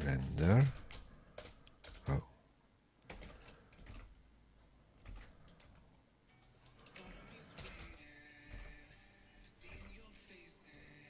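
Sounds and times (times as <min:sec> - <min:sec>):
computer keyboard typing: 0:00.5 - 0:02.2, 0:03.0 - 0:04.2, 0:05.0 - 0:08.8.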